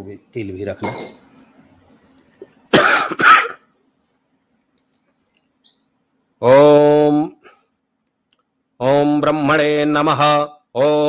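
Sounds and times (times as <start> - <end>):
loud coughs: 2.7 - 3.7.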